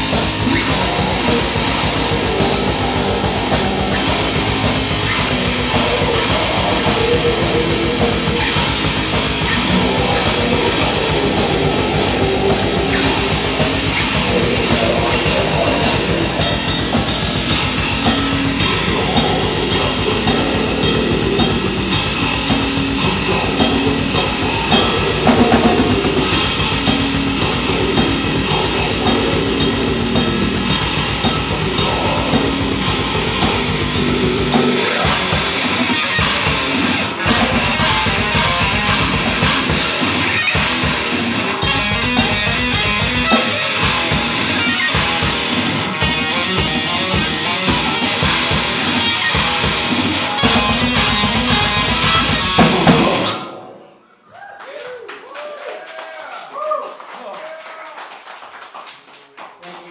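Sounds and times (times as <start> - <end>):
fast drumming: 0.0 - 53.5
distorted electric guitar: 0.0 - 54.0.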